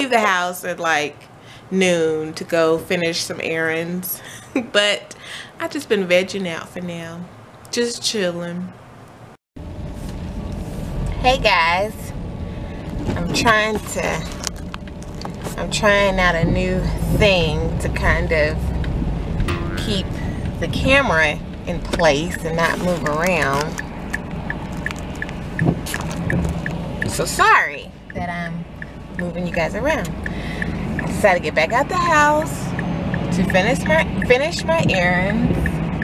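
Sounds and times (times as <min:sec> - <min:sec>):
car engine rumble from inside: 0:09.6 - 0:19.5, 0:20.2 - 0:36.0
light ticking: 0:28.8 - 0:31.2.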